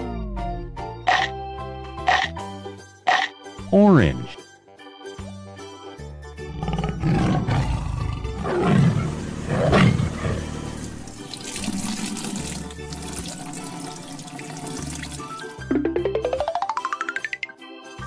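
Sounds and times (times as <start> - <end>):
children's background music: 0.0 - 6.5, 12.3 - 18.0
cartoon tiger roar: 6.5 - 10.5.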